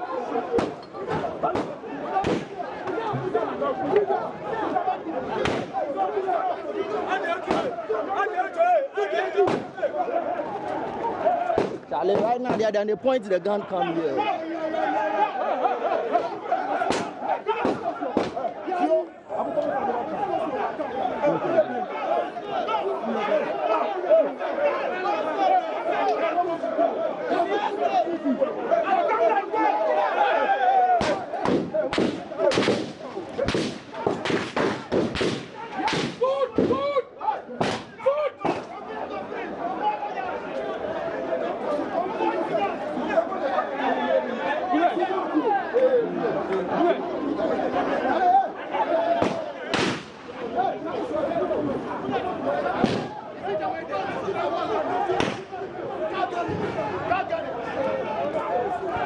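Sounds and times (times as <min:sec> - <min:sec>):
crowd talking and shouting: 0:00.0 - 0:59.0
gunshots: 0:01.4 - 0:02.6, 0:16.8 - 0:18.4, 0:31.0 - 0:36.8, 0:49.2 - 0:50.4.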